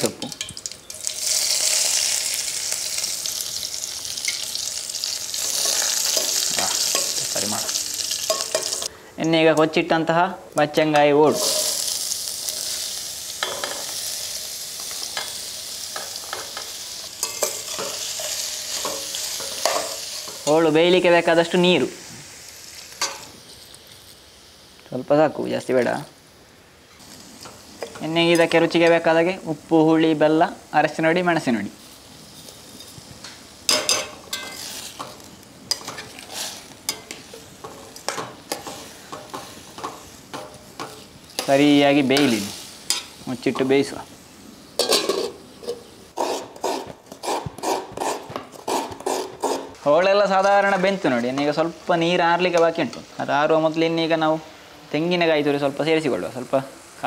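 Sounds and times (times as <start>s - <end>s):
food sizzling in hot oil: 0.0s - 57.0s
steel spoon clinking against pan: 5.6s - 7.2s, 8.2s - 8.9s, 16.0s - 20.4s, 33.7s - 35.1s
person speaking: 6.4s - 7.8s, 41.4s - 42.6s
spoon scraping metal pan: 11.3s - 11.8s, 33.7s - 41.6s, 44.8s - 49.8s.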